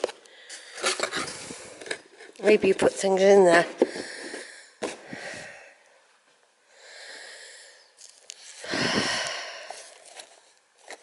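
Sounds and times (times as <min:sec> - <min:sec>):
breathy hissing breaths: 0:03.8 - 0:05.9, 0:06.7 - 0:10.4.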